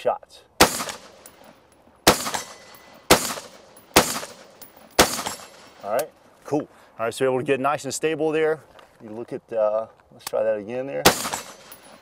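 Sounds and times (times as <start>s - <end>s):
rifle shots: 0.6s - 1.4s, 2.0s - 5.8s, 11.0s - 12.0s.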